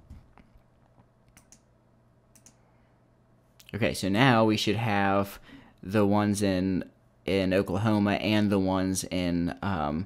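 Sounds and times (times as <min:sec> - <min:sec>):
computer mouse clicks: 0:00.4 - 0:01.7, 0:02.3 - 0:02.6.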